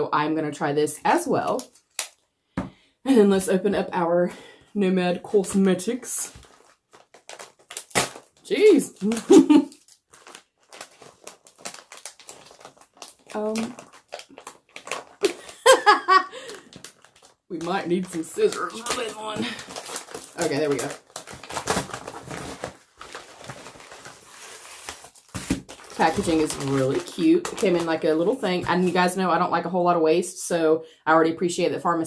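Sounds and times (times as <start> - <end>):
packaging crinkling and tearing: 1.4 - 2.2, 5.4 - 28.9.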